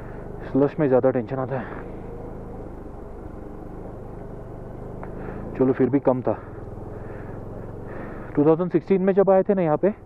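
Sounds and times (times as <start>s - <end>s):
motorcycle riding through slush: 0.0s - 9.2s
motorcycle engine running: 0.0s - 10.0s.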